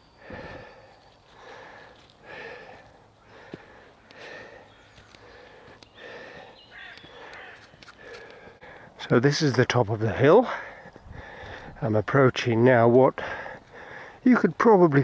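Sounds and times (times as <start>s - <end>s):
man breathing hard: 0.0s - 9.0s, 10.4s - 11.8s, 13.2s - 14.2s.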